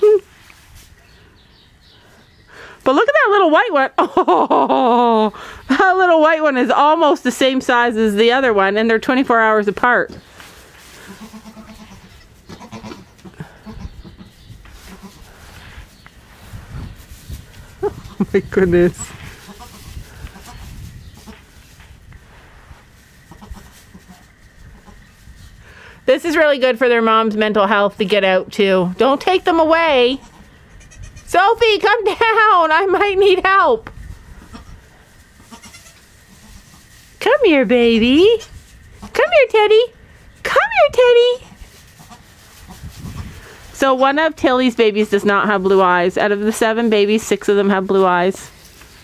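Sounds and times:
goat kids bleating: 10.9s - 15.5s, 17.8s - 18.5s, 19.2s - 21.6s, 23.2s - 25.1s, 30.0s - 31.4s, 34.4s - 36.8s
goats bleating: 11.0s - 15.2s, 35.4s - 36.7s
wind rumble on microphone: 13.7s - 23.7s, 30.8s - 31.8s, 33.0s - 35.0s, 42.6s - 43.8s.

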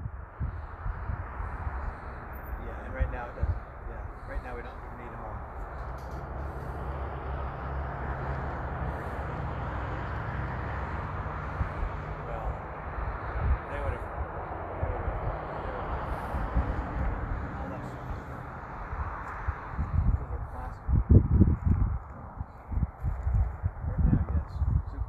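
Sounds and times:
distant voices: 0.0s - 25.0s
outdoor rushing noise: 0.0s - 25.0s.

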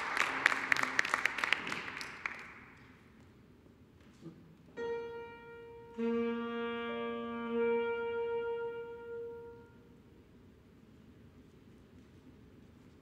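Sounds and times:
alto saxophone: 4.2s - 10.1s
grand piano: 4.7s - 9.8s.

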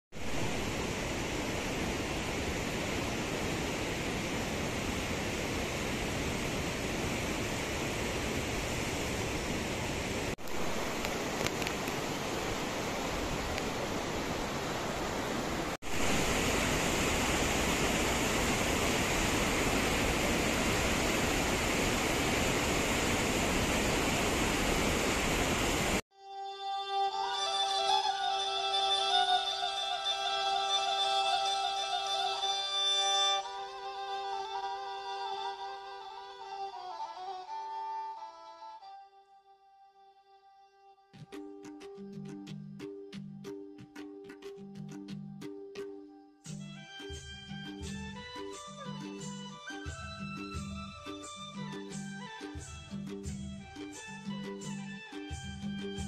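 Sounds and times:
rushing mountain stream: 0.2s - 26.0s.

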